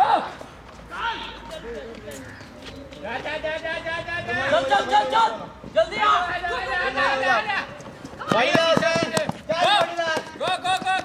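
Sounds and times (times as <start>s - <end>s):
quick running footsteps: 7.4s - 11.0s.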